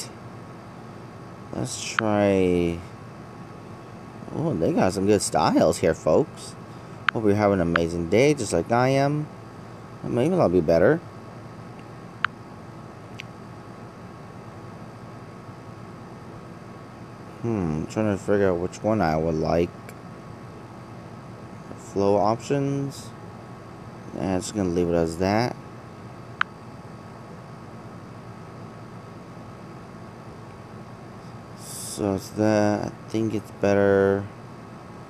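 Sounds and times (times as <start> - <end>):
room hiss and hum: 0.0 - 35.0.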